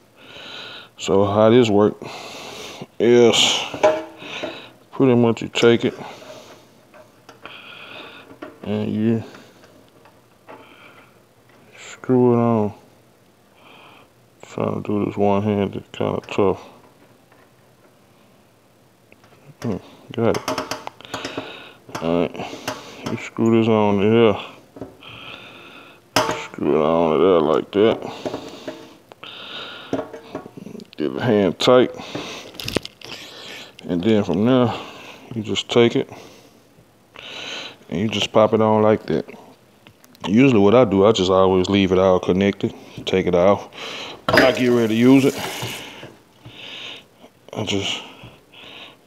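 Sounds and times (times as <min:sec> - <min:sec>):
faint steady hiss: 0:00.0 - 0:49.0
threads scraping: 0:44.3 - 0:46.0.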